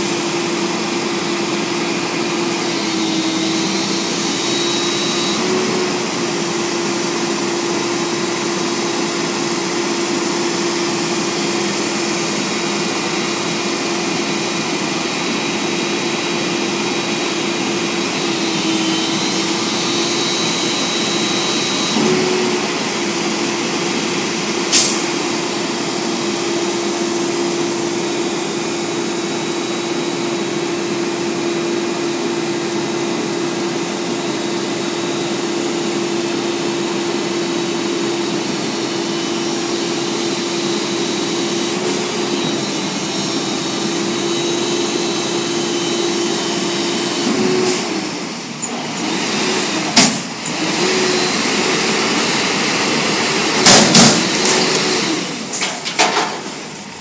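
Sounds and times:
garbage truck running: 0:00.0 - 0:57.0
hydraulic arms whining: 0:00.4 - 0:06.7, 0:12.3 - 0:57.0.

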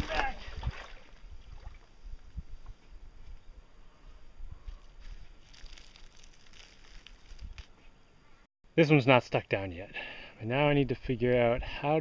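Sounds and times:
wind on microphone: 0:00.0 - 0:05.0
plastic film crinkling rustle: 0:05.4 - 0:07.7.

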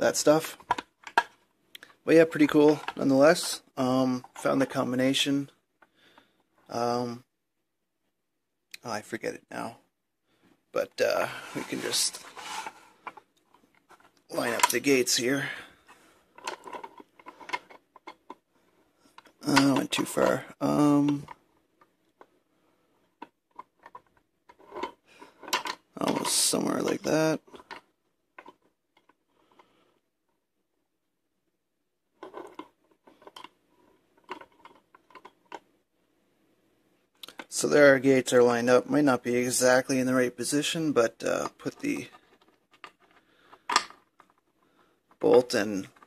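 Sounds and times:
faint metal scraping: 0:11.0 - 0:21.4.

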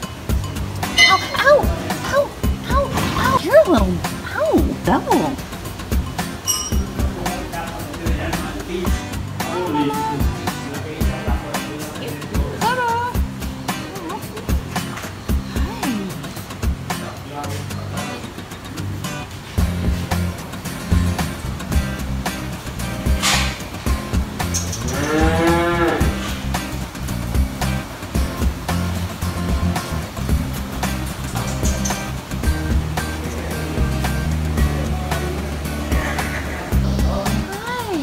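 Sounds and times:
background music with beat: 0:00.0 - 0:38.0.

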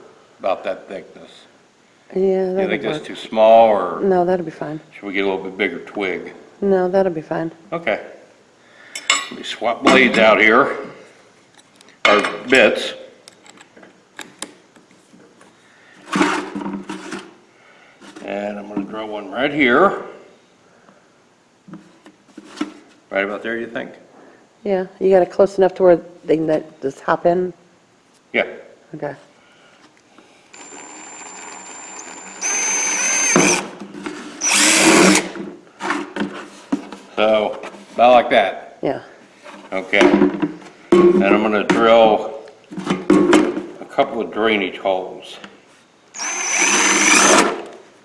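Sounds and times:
cordless drill motor running: 0:30.5 - 0:33.7, 0:34.4 - 0:35.3, 0:46.2 - 0:47.6.

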